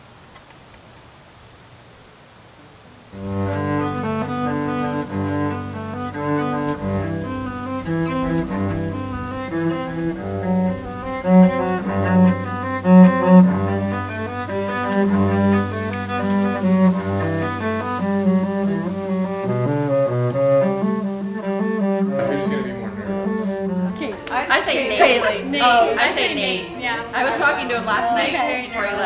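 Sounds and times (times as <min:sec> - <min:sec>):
bowed string music: 0:03.1 - 0:29.0
cello and violin playing: 0:03.2 - 0:29.0.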